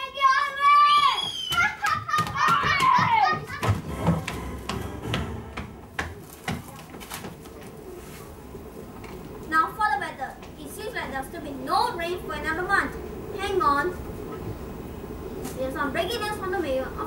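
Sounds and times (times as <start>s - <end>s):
children shouting: 0.0s - 3.7s
footsteps on hollow wooden floor: 2.2s - 9.2s.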